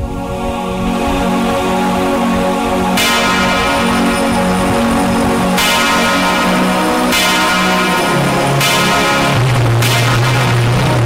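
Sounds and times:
devotional music with low tones: 0.0 - 11.0
altar bells ringing: 0.4 - 11.0.

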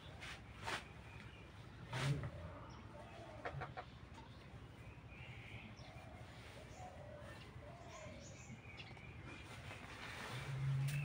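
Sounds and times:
chicken clucking: 2.0 - 4.7.

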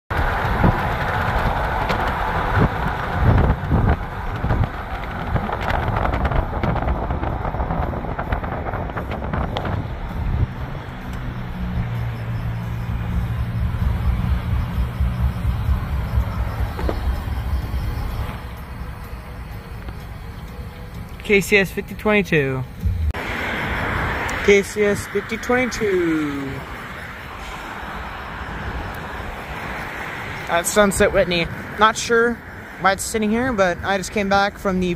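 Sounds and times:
low engine hum: 0.1 - 34.9
rough road noise: 0.1 - 34.9
vehicle knocks: 14.2 - 18.4.

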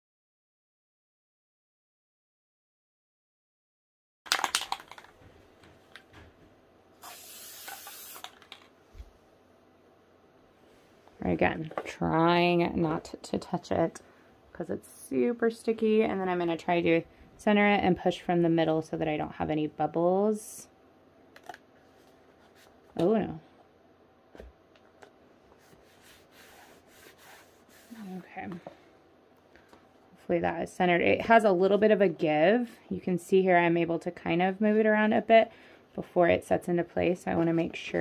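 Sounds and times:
aerosol spray hissing: 7.0 - 8.4.

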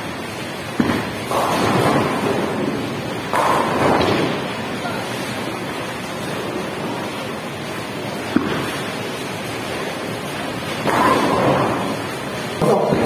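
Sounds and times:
bowling balls rolling: 0.0 - 13.0
bowling ball release: 0.8 - 7.0, 8.2 - 9.1.

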